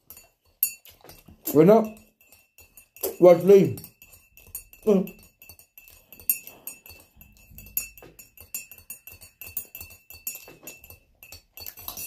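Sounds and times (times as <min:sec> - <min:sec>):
teaspoon clinking in ceramic mug: 0:00.0 - 0:12.0.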